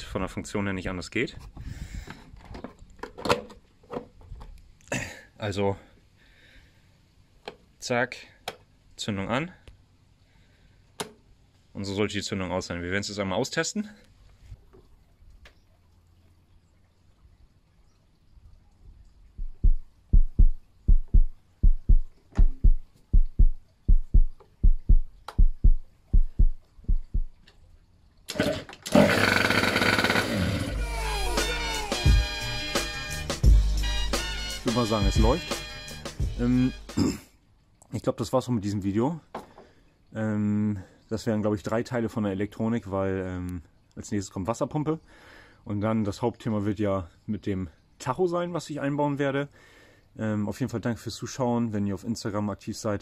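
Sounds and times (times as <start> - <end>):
scooter engine cranking: 28.3 - 30.8.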